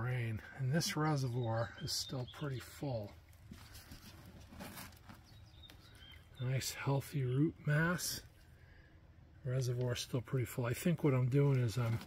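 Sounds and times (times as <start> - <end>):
soft rustling: 3.3 - 6.0.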